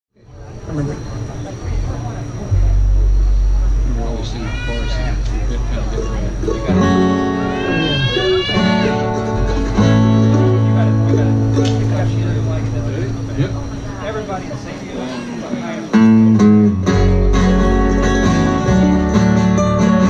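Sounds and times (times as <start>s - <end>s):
double bass notes: 0.7s - 14.9s, 15.9s - 20.0s
acoustic guitar: 1.6s - 20.0s
melody line bending in pitch: 2.4s - 14.4s
mandolin: 4.9s - 14.0s, 15.9s - 20.0s.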